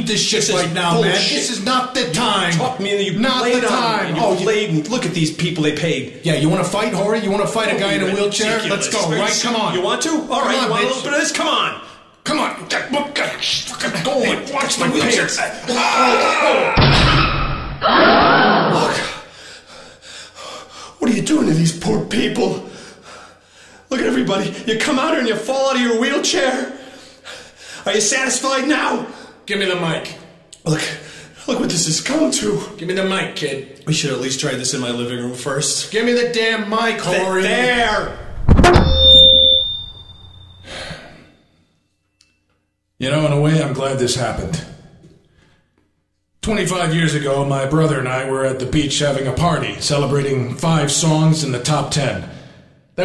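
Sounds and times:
man crying out: 0:15.6 - 0:16.8
microphone feedback squeal: 0:38.0 - 0:41.5
heavy thud: 0:38.2 - 0:39.3.

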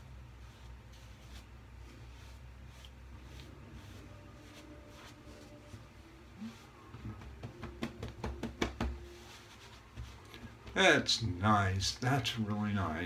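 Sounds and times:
low room hum: 0:00.0 - 0:13.0
towel rubbing on face: 0:00.3 - 0:07.5, 0:09.0 - 0:10.7.

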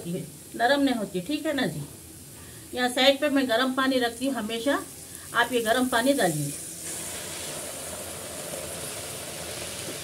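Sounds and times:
sizzling in a pressure cooker: 0:00.0 - 0:10.0
water pouring: 0:06.6 - 0:10.0.

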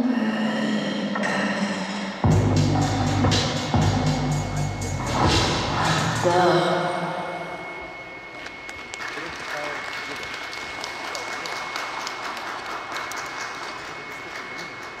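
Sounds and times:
dance music: 0:01.1 - 0:06.9
audience applause: 0:09.0 - 0:15.0.

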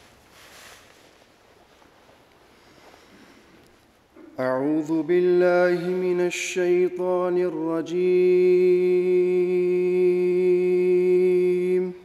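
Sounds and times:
man chanting: 0:04.4 - 0:12.0.

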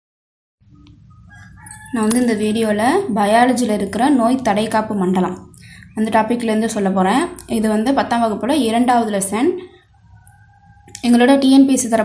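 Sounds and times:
faint pitched calls: 0:09.6 - 0:11.0.

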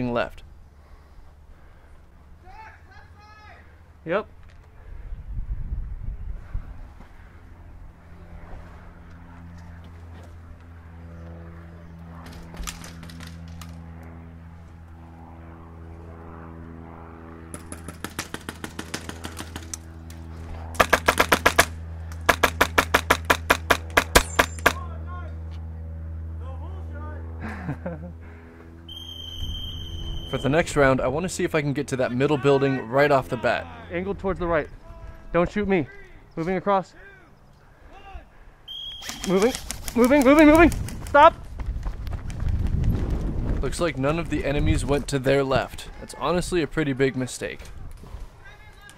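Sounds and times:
steady low hum: 0:00.0 - 0:48.7
airsoft rifle shots: 0:17.5 - 0:19.8, 0:20.7 - 0:24.9, 0:38.8 - 0:40.7.

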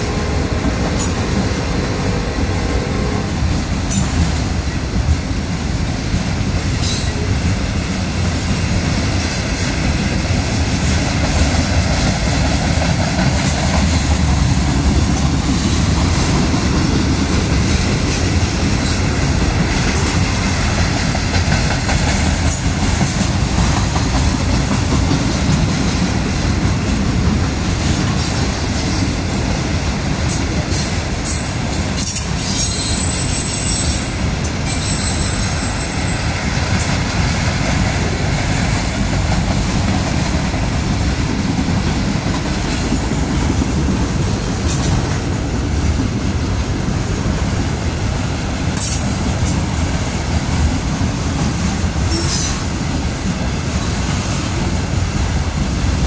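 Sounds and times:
clickety-clack over rail joints: 0:00.0 - 0:56.0
train wheels rumbling on rail: 0:00.0 - 0:56.0
wheel squeal: 0:34.7 - 0:35.9.

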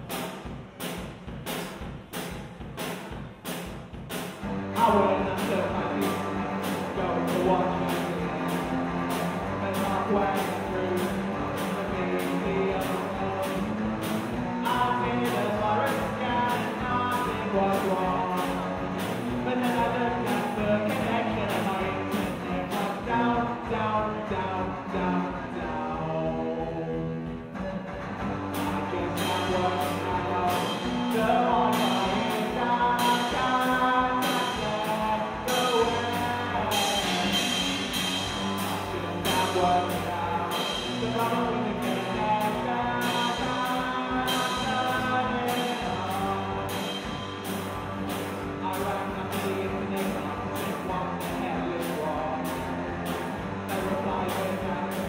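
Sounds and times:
drum kit beat: 0:00.0 - 0:55.0
distorted electric guitars: 0:04.3 - 0:55.0.

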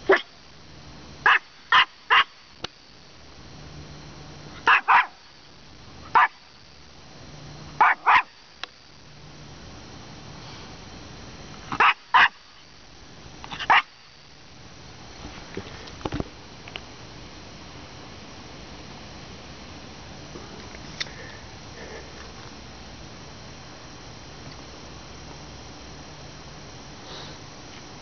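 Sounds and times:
small dog barking: 0:00.0 - 0:00.4, 0:01.2 - 0:02.4, 0:04.6 - 0:05.3, 0:06.1 - 0:06.4, 0:07.8 - 0:08.4, 0:11.7 - 0:12.4, 0:13.6 - 0:14.0.

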